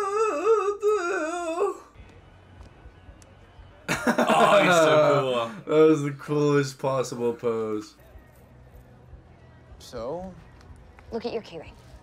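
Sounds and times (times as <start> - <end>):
person humming a wavering tune: 0.0 - 1.9.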